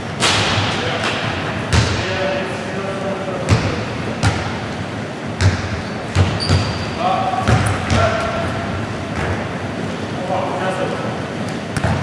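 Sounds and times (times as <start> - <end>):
basketball striking basket: 0.2 - 2.0, 3.5 - 4.6, 5.4 - 6.8, 7.4 - 8.3, 11.8 - 12.0
basketball bouncing on wooden floor: 3.5 - 4.5, 5.4 - 6.8, 7.4 - 8.2.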